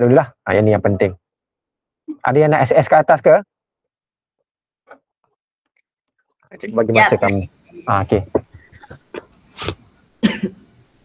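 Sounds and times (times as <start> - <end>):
person coughing: 8.8 - 10.7.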